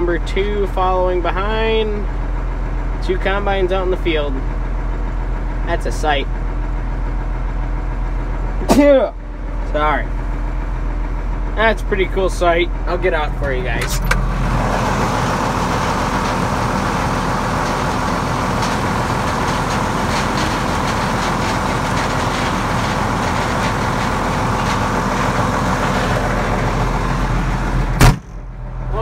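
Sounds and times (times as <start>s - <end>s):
dense machine noise: 0.0s - 29.0s
tractor diesel engine running: 0.0s - 29.0s.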